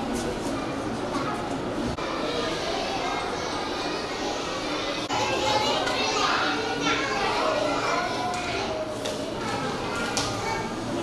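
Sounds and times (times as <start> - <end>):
children chattering and calling out: 0.0 - 11.0
high child's voice: 2.0 - 11.0.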